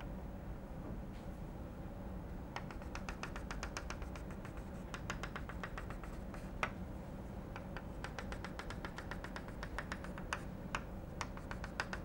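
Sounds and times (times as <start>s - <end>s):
chalk tapping on blackboard: 2.6s - 6.8s, 7.5s - 12.0s.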